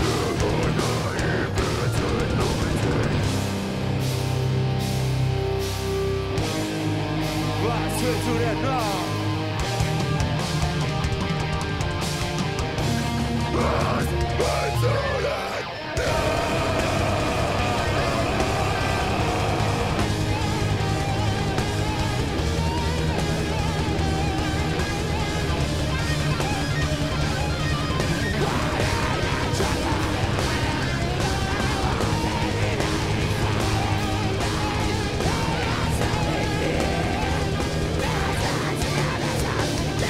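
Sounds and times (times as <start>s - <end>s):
bass guitar: 0.0s - 40.0s
distorted electric guitars: 0.0s - 40.0s
drums: 0.0s - 40.0s.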